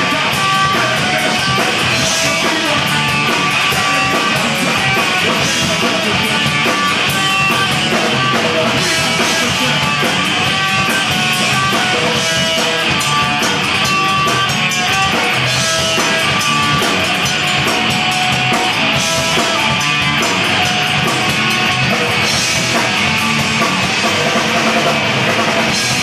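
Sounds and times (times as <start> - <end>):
distorted electric guitars: 0.0 - 26.0
punk band playing live: 0.0 - 26.0
steady drumming: 0.0 - 26.0.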